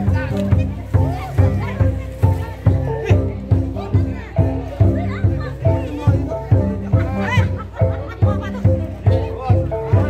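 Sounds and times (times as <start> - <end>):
crowd voices: 0.0 - 10.0
deep drum beats: 0.0 - 10.0.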